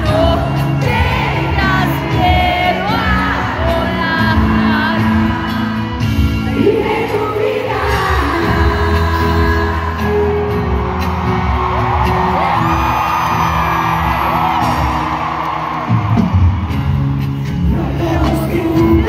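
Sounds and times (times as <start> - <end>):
crowd singing along: 0.0 - 12.6, 17.2 - 19.0
live pop band music: 0.0 - 19.0
crowd screaming: 9.7 - 19.0.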